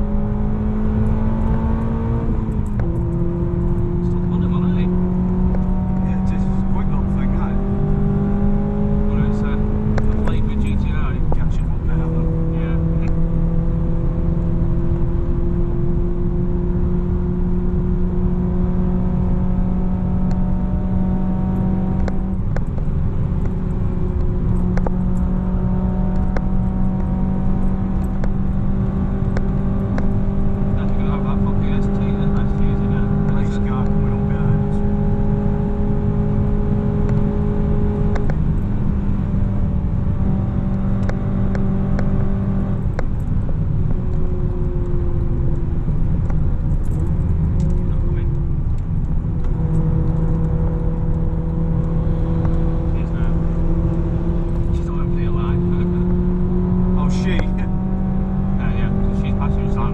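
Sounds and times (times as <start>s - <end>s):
car engine revving: 0.0s - 59.9s
road and tyre noise: 0.0s - 59.9s.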